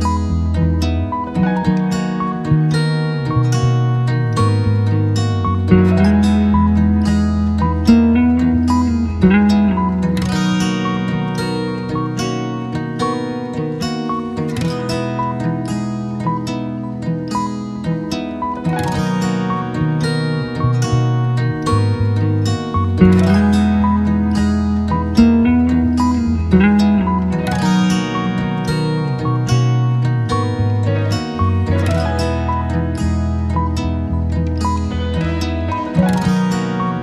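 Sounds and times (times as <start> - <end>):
plucked string music: 0.0 - 37.0.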